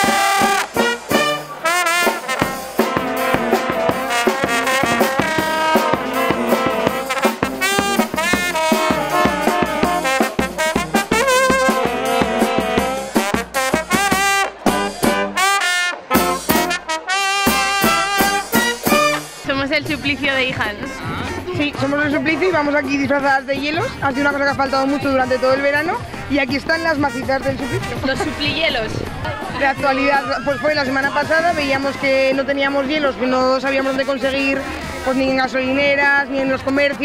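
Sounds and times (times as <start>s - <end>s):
steady drum beat: 0.0s - 36.0s
brass instruments playing: 0.0s - 37.0s.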